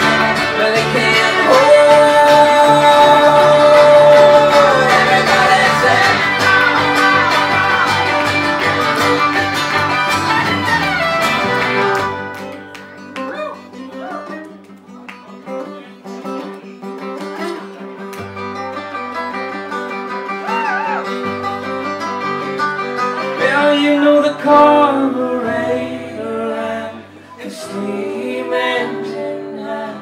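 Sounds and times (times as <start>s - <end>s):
acoustic string band playing: 0.0s - 13.2s, 15.7s - 29.9s.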